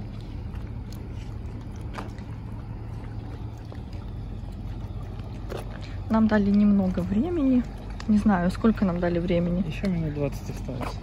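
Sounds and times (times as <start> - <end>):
motorboat engine droning: 0.0 - 11.0.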